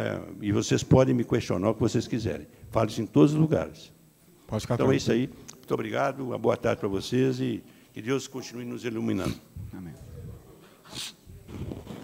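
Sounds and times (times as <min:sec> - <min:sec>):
murmur of voices: 0:08.2 - 0:12.0
short hiss: 0:10.8 - 0:12.0.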